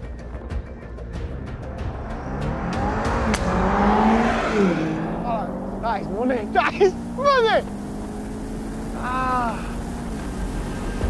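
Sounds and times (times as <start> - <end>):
sports car accelerating past: 1.4 - 11.0
golf ball struck crack: 3.2 - 3.6.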